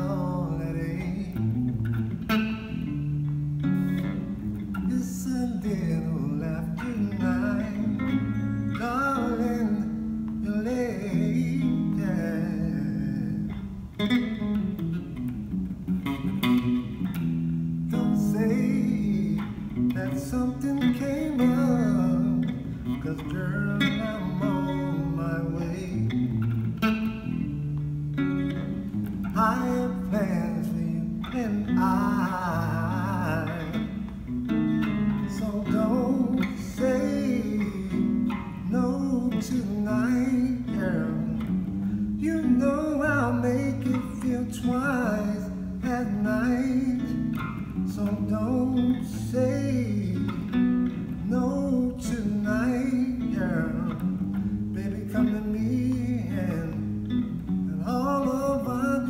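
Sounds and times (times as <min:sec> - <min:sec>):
electric bass guitar groove: 0:06.0 - 0:52.4.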